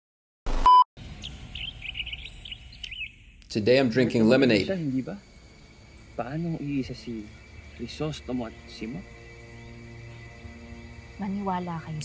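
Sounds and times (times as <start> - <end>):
short electronic beep: 0.5 - 0.8
faint outdoor background: 0.6 - 12.0
birds chirping: 1.0 - 12.0.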